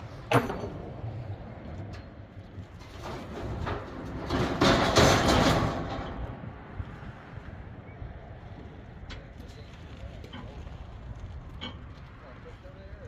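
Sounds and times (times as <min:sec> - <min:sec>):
steel truck bed scraping steel: 0:00.0 - 0:07.2.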